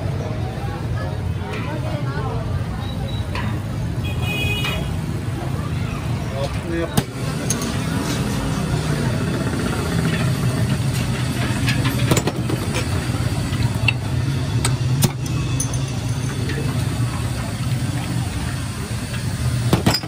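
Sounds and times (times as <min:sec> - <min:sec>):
metal and glass clinks: 0:15.2 - 0:16.6.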